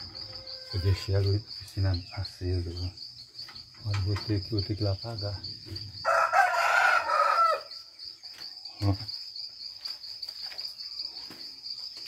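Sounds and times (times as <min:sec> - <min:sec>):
crickets chirping: 0:00.0 - 0:12.0
rooster crowing: 0:06.0 - 0:07.9.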